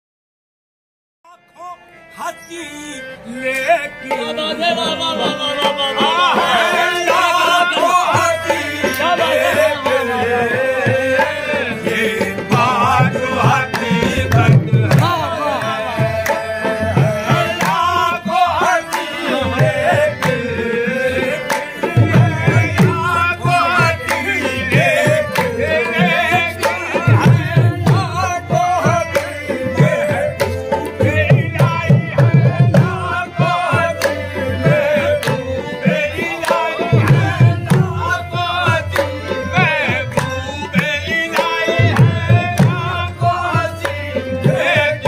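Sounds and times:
man singing: 0:01.2 - 0:45.0
harmonium chords: 0:01.3 - 0:45.0
rhythmic hand clapping: 0:10.6 - 0:45.0.

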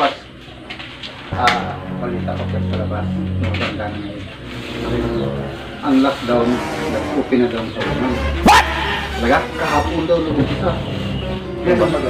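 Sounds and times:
background music: 0:00.0 - 0:12.0
voices: 0:00.0 - 0:12.0
dog barking: 0:08.4 - 0:08.9.

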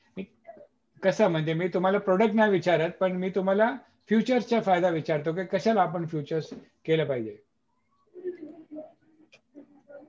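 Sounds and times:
man speaking: 0:01.0 - 0:07.4.

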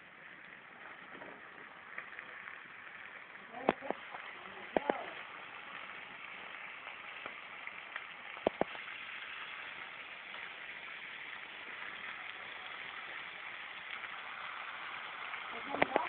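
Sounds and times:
meat sizzling in a pan: 0:00.0 - 0:16.0.

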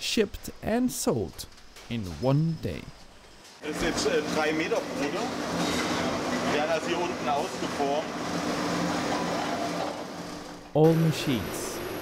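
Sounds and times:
machinery hum and whir: 0:00.0 - 0:12.0.

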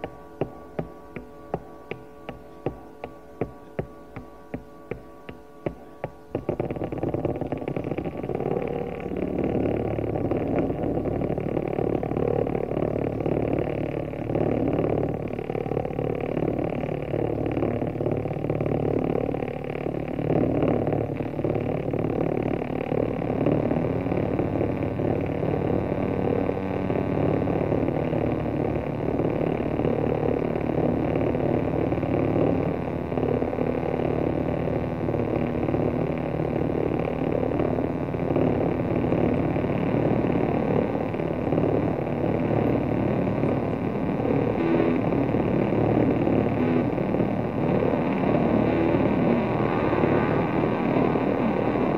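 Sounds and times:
distorted electric guitar: 0:00.0 - 0:51.9.

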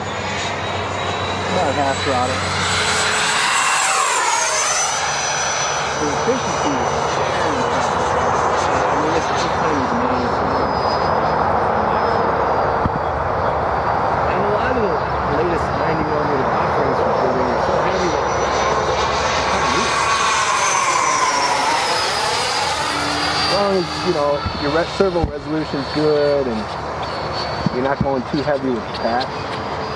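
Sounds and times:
electric ducted fan whine: 0:00.0 - 0:29.9.

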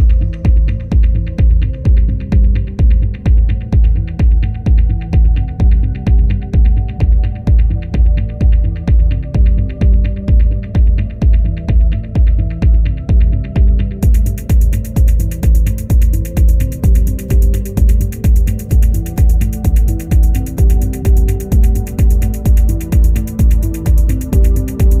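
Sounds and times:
heavy kick drum: 0:00.0 - 0:25.0.

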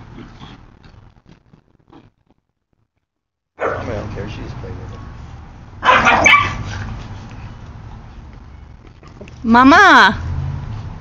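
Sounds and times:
dog barking: 0:03.6 - 0:03.9, 0:05.8 - 0:06.9.

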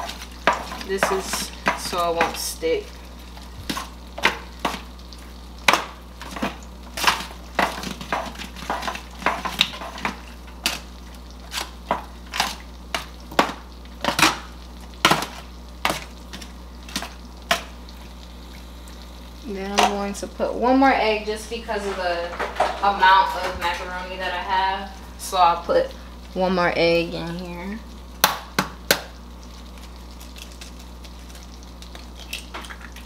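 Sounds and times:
foil crinkling: 0:29.4 - 0:33.0.

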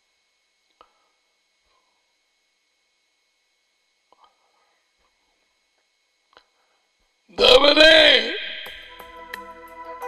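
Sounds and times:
person's drawn-out vocal sound: 0:07.3 - 0:08.7.

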